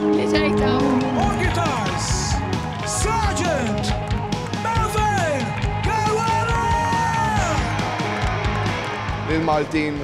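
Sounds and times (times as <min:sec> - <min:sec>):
rock band music: 0:00.0 - 0:10.0.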